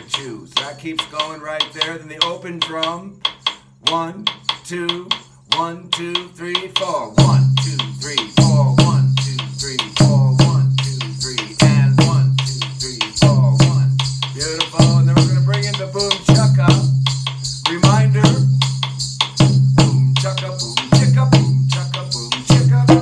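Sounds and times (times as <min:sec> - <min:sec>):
hand drums playing: 0:00.0 - 0:23.0
sharp stick strikes: 0:00.0 - 0:23.0
deep bass drum notes: 0:07.0 - 0:23.0.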